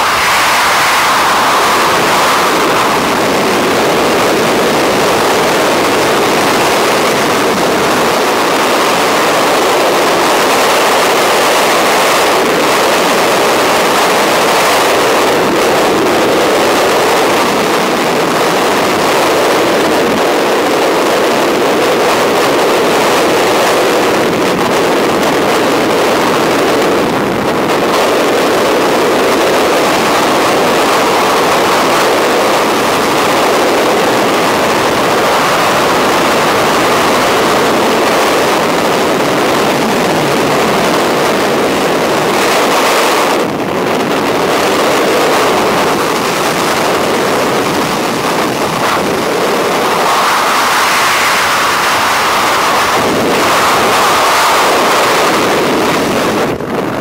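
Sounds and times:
wind buffeting microphone: 0.0s - 57.0s.

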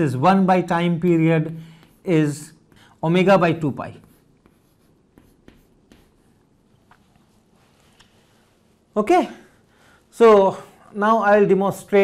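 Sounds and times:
chalk tapping on board: 1.4s - 2.9s, 3.9s - 6.5s
chalk scratching on chalkboard: 1.7s - 6.5s.

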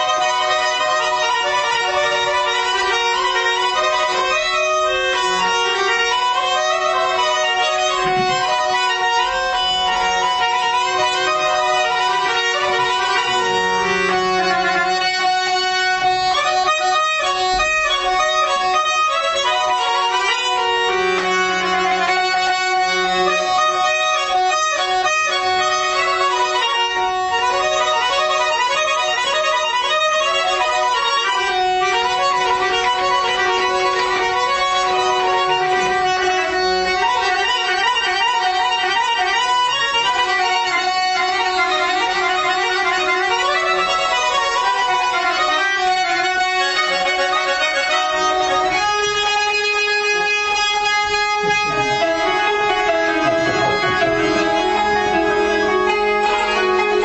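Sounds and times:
accordion melody: 0.0s - 57.0s
held drone note: 51.1s - 57.0s.

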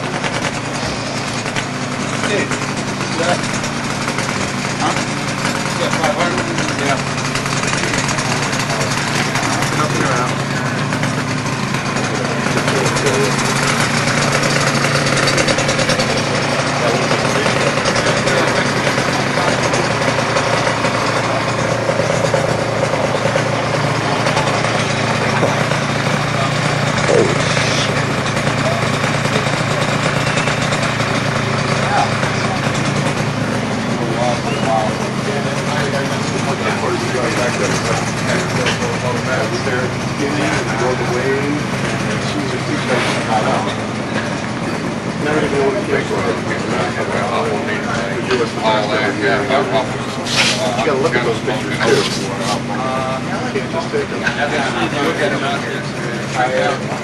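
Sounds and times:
crowd chattering: 0.0s - 57.0s
engine idling: 0.0s - 57.0s.

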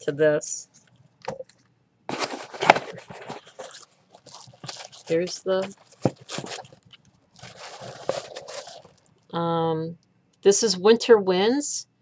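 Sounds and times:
paper rustling: 2.1s - 9.1s.

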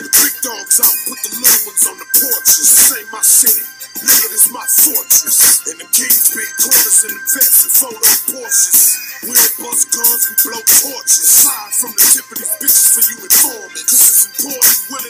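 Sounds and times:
man rapping over drum beat: 0.0s - 15.0s.

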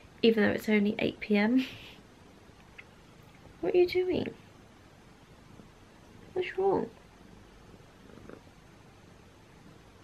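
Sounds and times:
cat purring: 2.7s - 10.0s.

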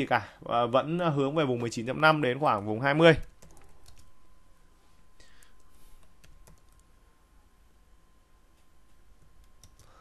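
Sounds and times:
faint high hum: 0.0s - 10.0s
typing on computer keyboard: 2.5s - 4.1s, 5.4s - 6.9s, 9.4s - 10.0s.

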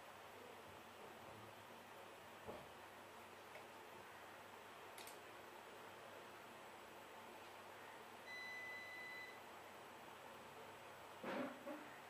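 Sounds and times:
electronic beep: 8.3s - 9.4s.

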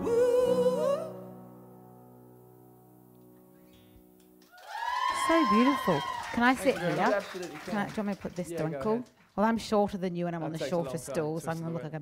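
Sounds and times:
audience applause and cheering: 4.4s - 8.8s.

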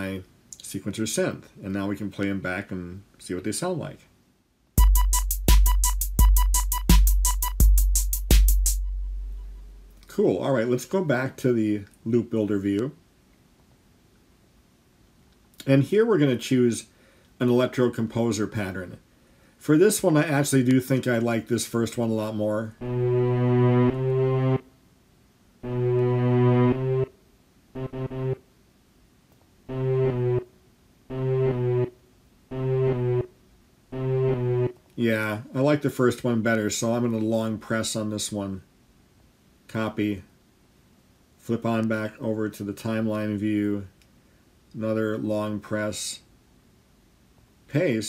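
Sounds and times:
deep kick drum with bass tail: 4.8s - 9.9s
hip-hop drum machine loop: 4.8s - 10.0s, 25.6s - 27.1s, 27.8s - 28.4s, 29.7s - 30.4s, 31.1s - 31.9s, 32.5s - 33.3s, 33.9s - 34.8s
crisp hi-hat ticks: 4.8s - 10.1s
synth tone phrases: 22.8s - 24.6s, 25.6s - 27.1s, 27.8s - 28.4s, 29.7s - 30.5s, 31.1s - 33.3s, 33.9s - 34.8s.

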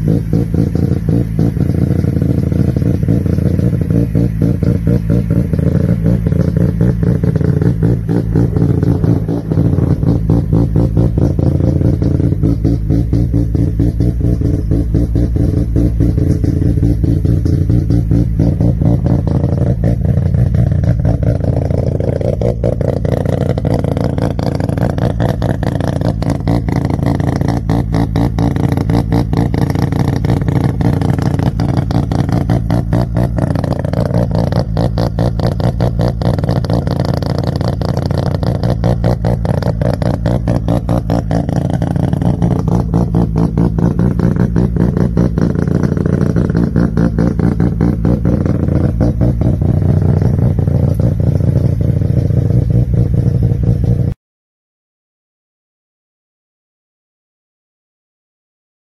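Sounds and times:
rotary engine revving: 0.0s - 54.2s.

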